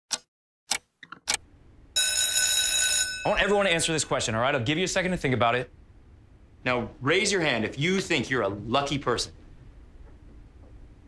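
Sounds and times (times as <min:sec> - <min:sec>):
electric bell ringing: 0:02.0 - 0:03.9.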